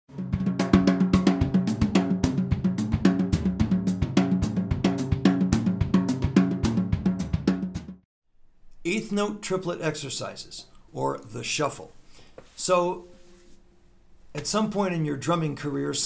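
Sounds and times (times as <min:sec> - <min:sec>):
drum kit playing a groove: 0:00.1 - 0:08.0.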